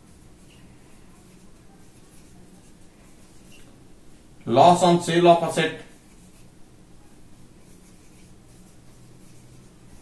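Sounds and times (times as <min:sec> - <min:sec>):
marker writing on whiteboard: 0:00.1 - 0:03.7, 0:05.6 - 0:06.5, 0:07.6 - 0:10.0.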